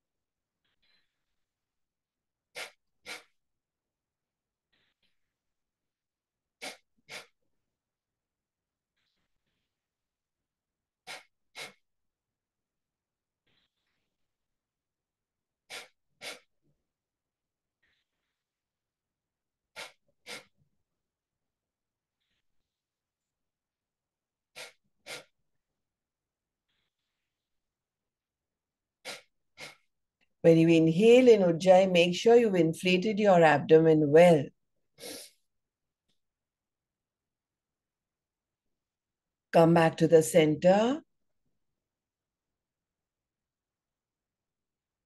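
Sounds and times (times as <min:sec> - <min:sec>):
forceful nasal exhalations: 0:02.5 - 0:03.4, 0:06.5 - 0:07.4, 0:11.0 - 0:11.9, 0:15.6 - 0:16.6, 0:19.7 - 0:20.7, 0:24.5 - 0:25.4, 0:29.0 - 0:29.9, 0:35.0 - 0:35.5
hissing throat inhalation: 0:02.5 - 0:03.4, 0:06.6 - 0:07.4, 0:11.0 - 0:11.8, 0:15.7 - 0:16.5, 0:19.7 - 0:20.6, 0:24.5 - 0:25.3, 0:29.0 - 0:29.9, 0:35.0 - 0:35.4.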